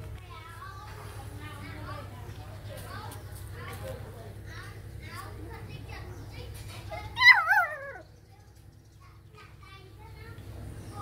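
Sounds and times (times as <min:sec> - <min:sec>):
young dog whining: 0:07.1 - 0:08.1.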